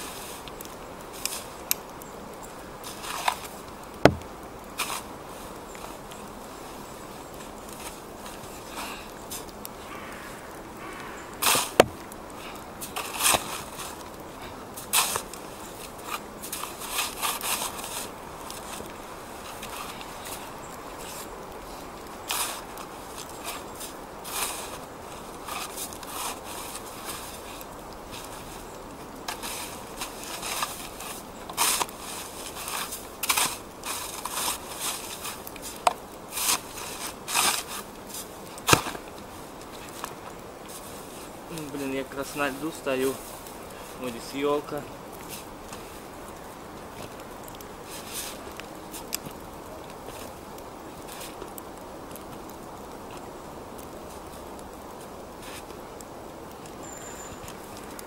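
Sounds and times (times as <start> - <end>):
shovel crunching and scraping snow: 2.8 - 4.2, 4.8 - 6.0, 11.4 - 28.6, 29.3 - 39.0, 47.9 - 49.2, 55.4 - 55.7.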